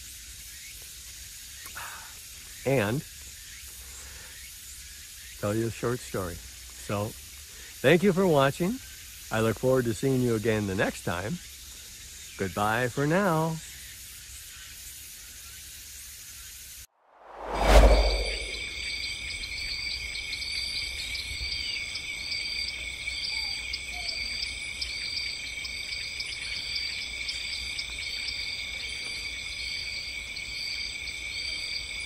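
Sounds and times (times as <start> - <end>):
steady outdoor hiss: 0.0 - 18.8, 20.0 - 32.0
low rumble: 17.1 - 18.8.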